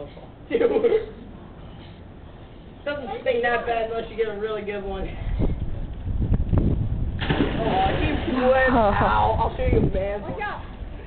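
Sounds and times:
loud water splash: 7.2s - 9.0s.

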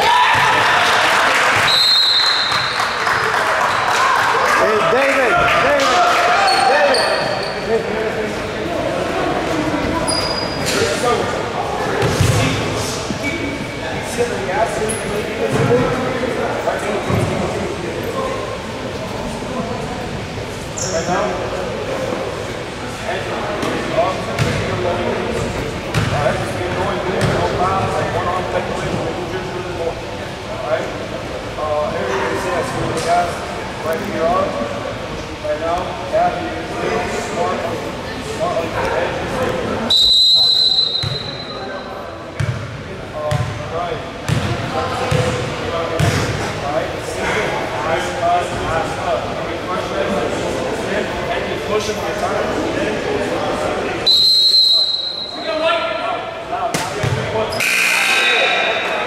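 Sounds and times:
many voices chattering: 0.0s - 59.0s
short high squeaks: 10.0s - 10.8s.

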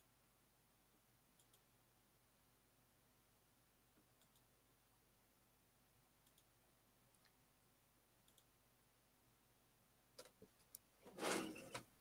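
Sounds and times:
computer mouse clicks: 1.4s - 1.7s, 4.2s - 4.5s, 6.2s - 6.5s, 8.2s - 8.5s.

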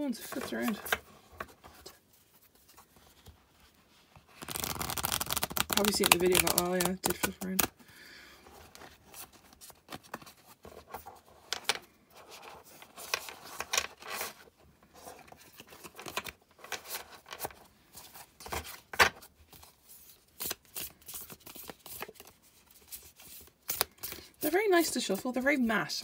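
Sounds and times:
cards being shuffled: 0.2s - 2.0s, 4.2s - 7.8s, 15.0s - 25.0s.

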